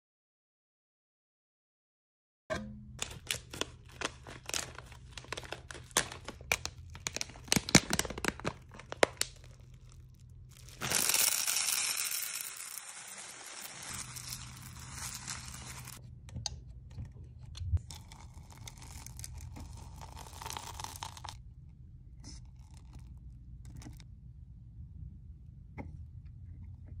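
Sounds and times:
beads pouring into metal pot: 0:03.0 - 0:16.0, 0:17.9 - 0:21.4
plastic bag crinkling: 0:03.0 - 0:16.0, 0:18.0 - 0:21.4.

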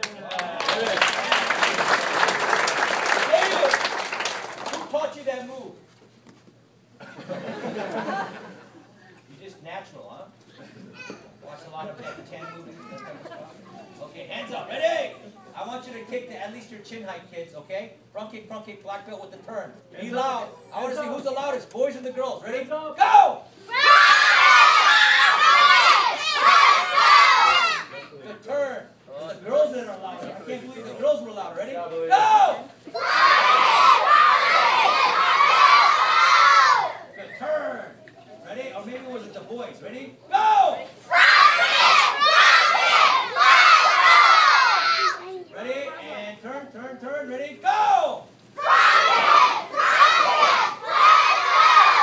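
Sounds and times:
children yelling together: 0:23.7 - 0:28.0, 0:32.9 - 0:37.1, 0:41.1 - 0:45.4, 0:48.6 - 0:52.0.

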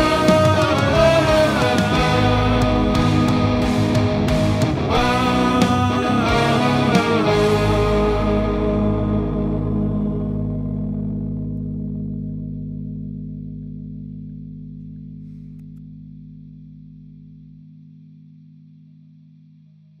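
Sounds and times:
distorted electric guitar chord ringing: 0:00.0 - 0:18.7
faint hum: 0:00.0 - 0:20.0.

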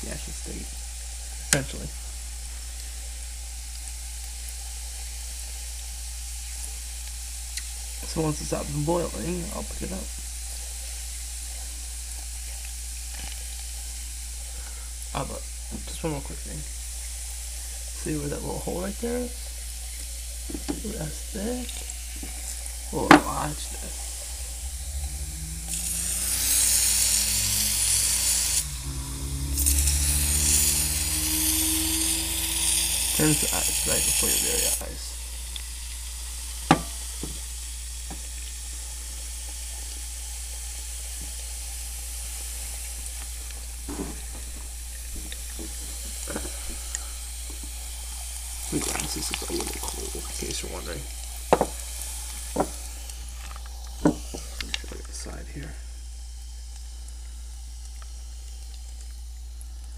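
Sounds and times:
propellant hissing in water: 0:00.0 - 0:59.9.

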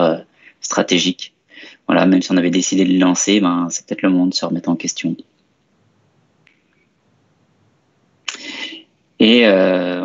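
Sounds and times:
man speaking: 0:00.0 - 0:05.2, 0:08.3 - 0:10.0
breathy inhale: 0:01.5 - 0:01.9, 0:08.4 - 0:08.8.

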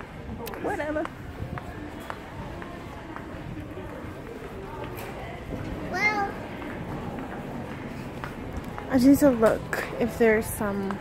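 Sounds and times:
low background voices: 0:00.0 - 0:11.0
retail store ambient noise: 0:00.0 - 0:11.0.

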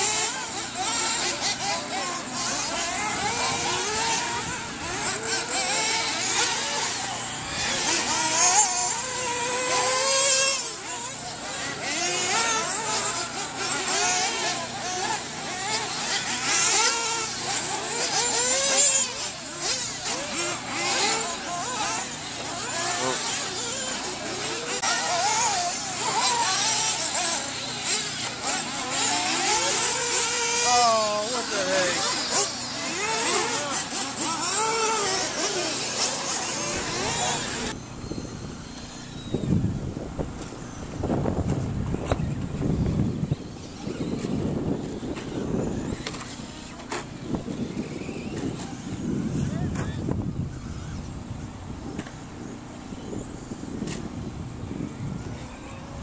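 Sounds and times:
rc truck motors whining: 0:00.0 - 0:56.0.

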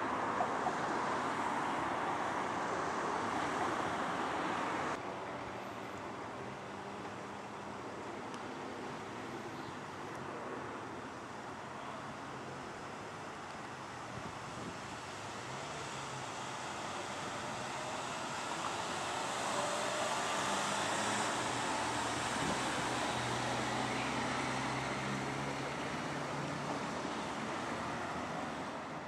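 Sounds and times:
ambulance driving past: 0:10.9 - 0:29.0
wind noise on microphone: 0:14.0 - 0:15.0, 0:21.7 - 0:23.3.

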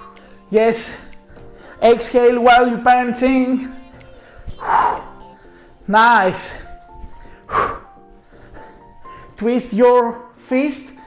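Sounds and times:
soft background music: 0:00.0 - 0:11.0
man exhaling sharply: 0:07.5 - 0:07.9.

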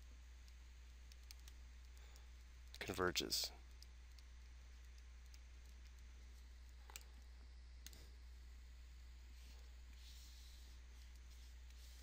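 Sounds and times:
man speaking: 0:02.8 - 0:03.6.

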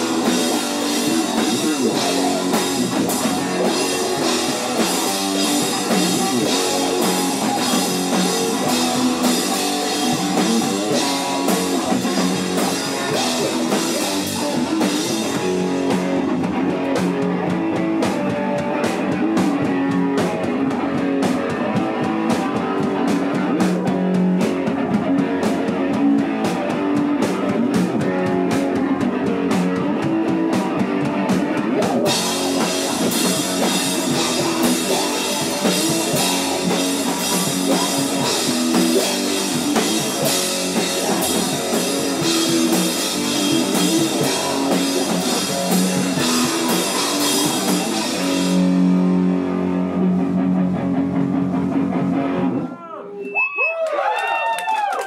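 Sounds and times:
drum kit beating: 0:00.0 - 0:52.4
distorted electric guitar: 0:00.0 - 0:53.5.

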